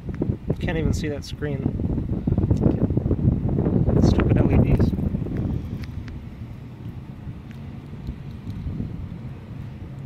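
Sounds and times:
steady low hum: 0.0 - 10.0
wind buffeting microphone: 0.0 - 10.0.

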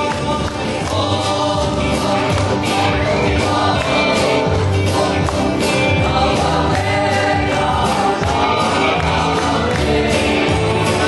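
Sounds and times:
acoustic guitar strumming: 0.0 - 11.0
man singing into a microphone: 0.0 - 11.0
voices singing along: 0.0 - 11.0.

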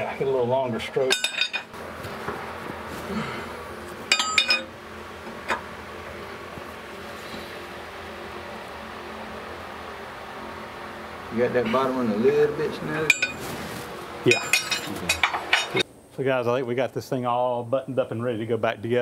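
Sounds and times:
wrench clinking on metal bolts: 1.1 - 1.7, 4.1 - 4.7, 14.3 - 15.8.

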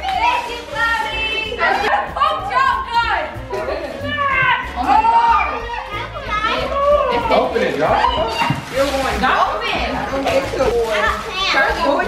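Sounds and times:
children talking excitedly: 0.0 - 12.0.

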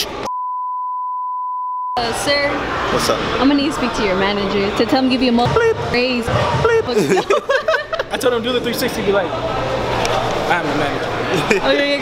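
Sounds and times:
electronic beep tone: 0.3 - 2.0.

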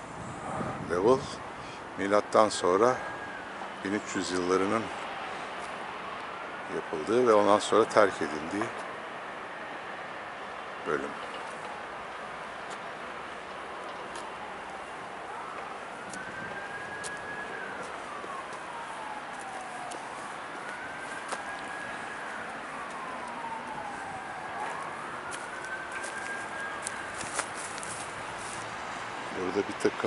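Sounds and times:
city noise hiss: 0.0 - 30.0
emergency siren wailing: 0.1 - 30.0.

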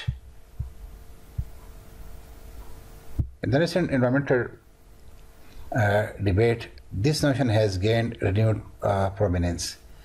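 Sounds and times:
soft low thumps: 0.0 - 3.4
faint hum with low rumble: 0.0 - 10.0.

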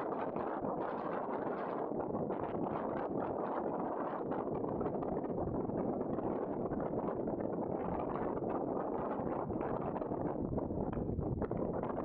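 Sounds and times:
wind blowing across microphone: 0.0 - 12.0.

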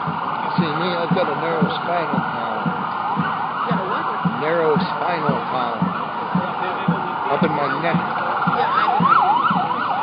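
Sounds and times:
emergency siren yelping: 0.0 - 10.0
steady background noise: 0.0 - 10.0.

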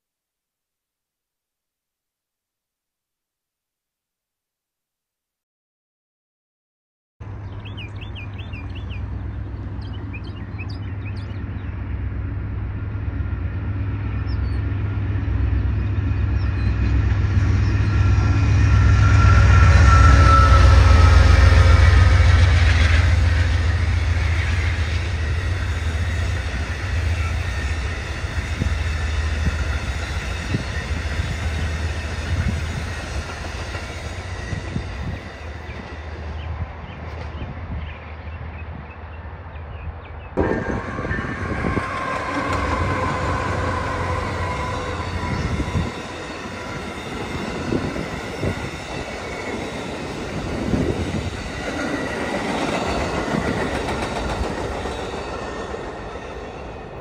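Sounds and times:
passenger train rumbling past: 7.2 - 57.0.

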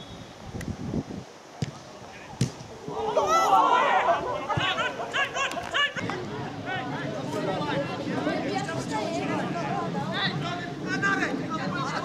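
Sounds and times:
football kicked thud: 1.6 - 1.8, 2.4 - 2.6.

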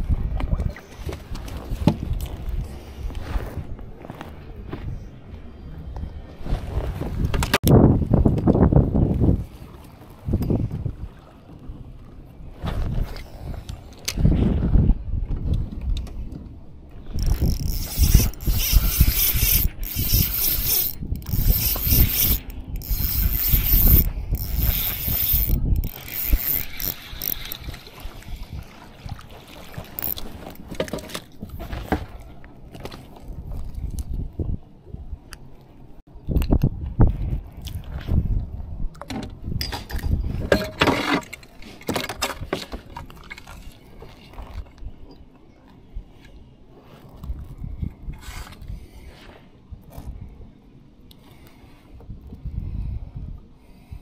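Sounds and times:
wind rumble on microphone: 0.0 - 30.8, 31.4 - 40.8, 45.8 - 51.0, 51.7 - 54.0
fishing reel whirring: 17.2 - 27.8, 29.9 - 30.6.

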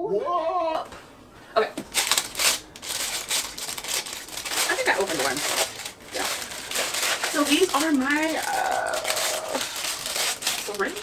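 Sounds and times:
plastic packaging crinkling: 1.8 - 11.0
person speaking: 10.4 - 11.0.

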